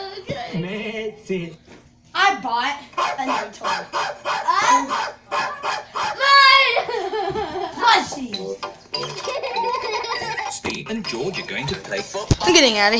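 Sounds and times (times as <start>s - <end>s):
people talking and laughing: 4.5s - 8.2s, 9.1s - 12.9s.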